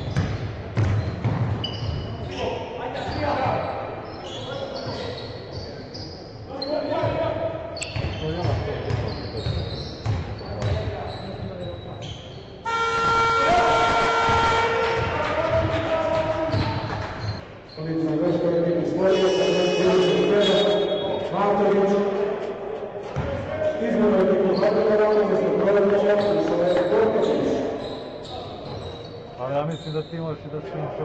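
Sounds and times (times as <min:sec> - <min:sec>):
sneakers squeaking: 0:00.0 - 0:13.6, 0:14.2 - 0:18.0, 0:19.0 - 0:30.4
players' voices: 0:02.0 - 0:31.0
loud horn: 0:12.6 - 0:15.2, 0:19.0 - 0:20.9.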